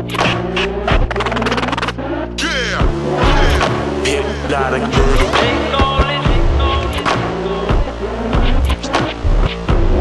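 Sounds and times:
hip hop electro beat: 0.0s - 10.0s
vinyl scratching: 0.0s - 10.0s.

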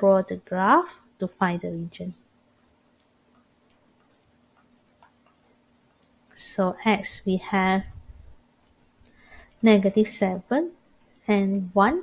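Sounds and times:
stylus tapping on tablet screen: 3.0s - 6.3s.

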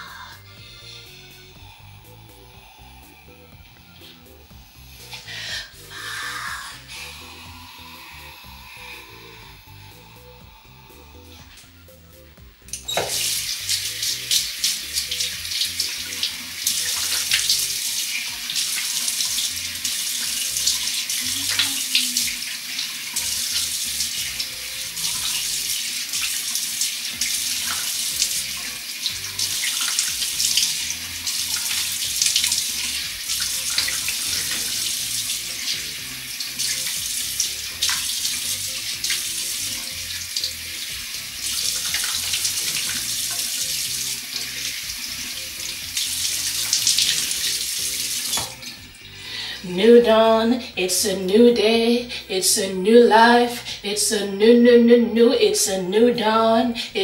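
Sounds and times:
tap running into basin: 12.7s - 49.2s.

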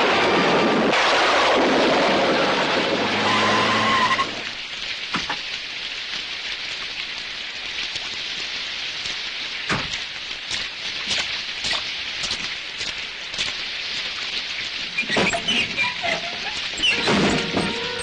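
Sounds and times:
heavy rain pouring: 0.0s - 18.0s
scattered knocks: 16.9s - 18.0s.

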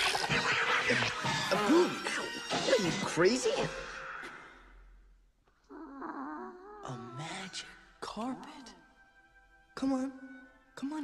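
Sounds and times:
cartoon background music: 0.0s - 4.3s.

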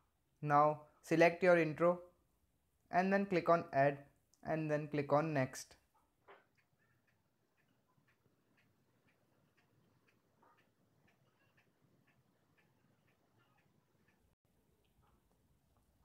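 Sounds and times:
faint ticks: 6.3s - 15.4s.

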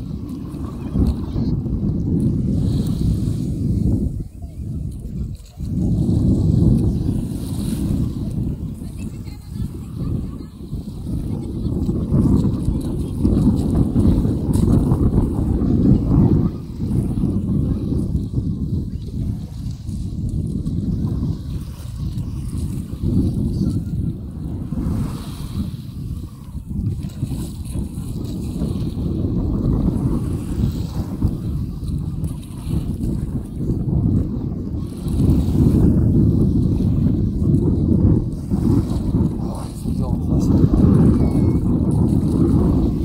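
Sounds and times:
small waves washing on shore: 0.0s - 43.0s
wind buffeting microphone: 0.0s - 43.0s.

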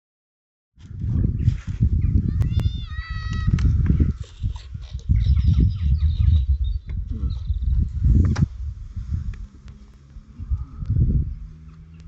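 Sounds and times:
wind buffeting microphone: 0.8s - 12.0s.

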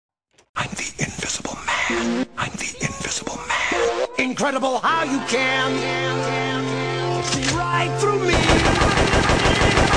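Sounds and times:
person whispery voice: 0.6s - 4.3s.

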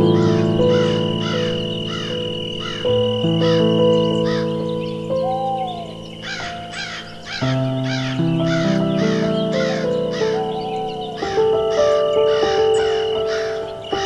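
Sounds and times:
bird giving harsh calls: 0.0s - 14.0s.

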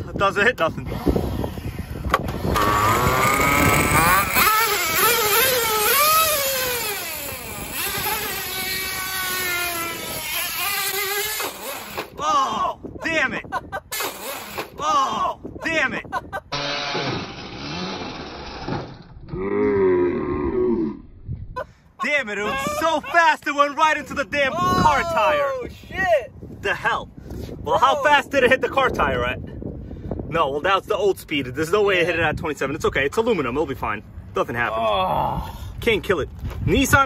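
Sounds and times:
rc truck engine revving: 2.2s - 12.1s, 16.5s - 19.1s.

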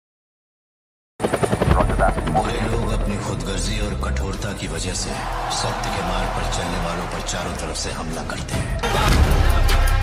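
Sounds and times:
helicopter rotor blades chopping: 1.2s - 4.1s.

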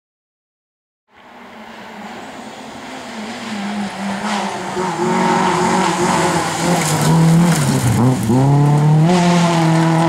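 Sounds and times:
rally car engine approaching: 1.1s - 10.0s.

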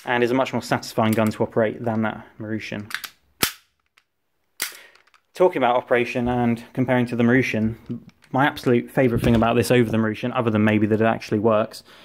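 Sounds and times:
pistol bolt racking clacks: 2.8s - 5.3s.

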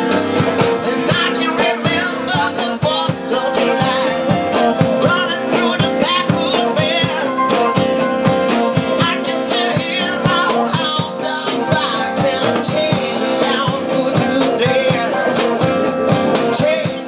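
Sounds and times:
steady beat: 0.0s - 16.9s
electronic keyboard: 0.0s - 17.0s
man singing: 0.0s - 17.0s
strummed acoustic guitars: 0.0s - 17.0s.

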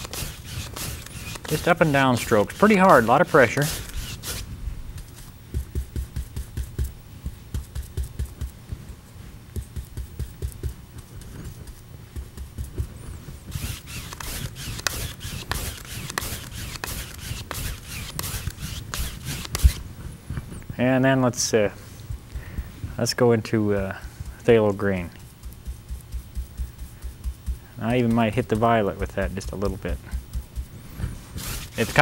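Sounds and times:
scratchy brush strokes: 0.0s - 20.6s, 21.6s - 32.0s
paintbrush thumping on canvas: 5.0s - 8.8s, 25.1s - 31.7s.

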